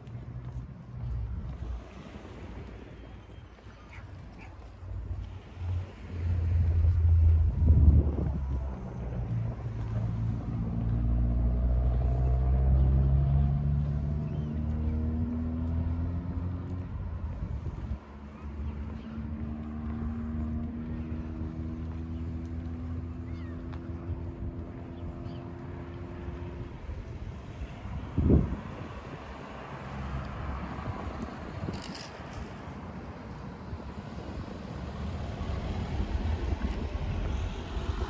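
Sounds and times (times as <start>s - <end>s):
wind buffeting microphone: 0.0s - 13.2s, 13.8s - 19.1s, 26.5s - 38.0s
engine drone rising in pitch: 5.7s - 17.3s.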